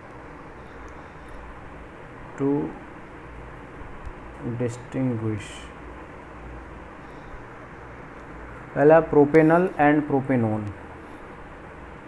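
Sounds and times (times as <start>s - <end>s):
low background rumble and hiss: 0.0s - 12.0s.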